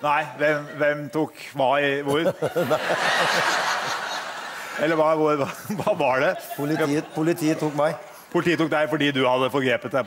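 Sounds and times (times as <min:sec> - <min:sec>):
laughter: 0:02.0 - 0:09.0.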